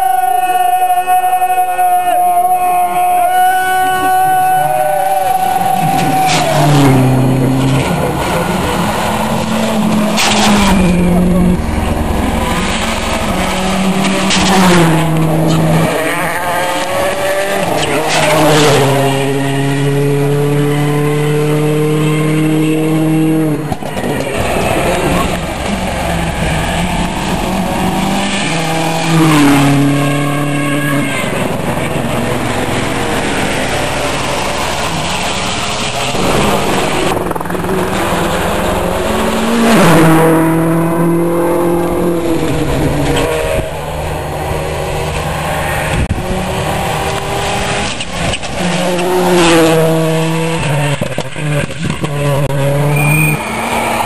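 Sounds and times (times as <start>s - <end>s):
rally cars passing at speed: 2.6s - 54.0s
engines shifting gears: 3.6s - 54.0s.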